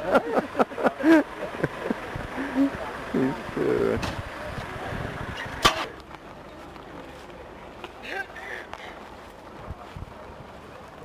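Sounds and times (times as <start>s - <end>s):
outdoor background noise: 0.0s - 11.0s
short sharp bang: 5.4s - 5.9s.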